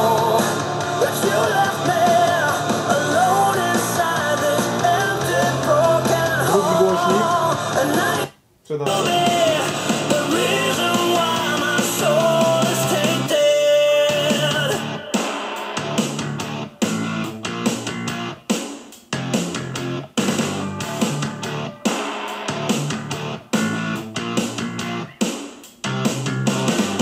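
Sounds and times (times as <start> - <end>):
guitar music from speaker: 15.8 - 18.4, 19.1 - 25.2.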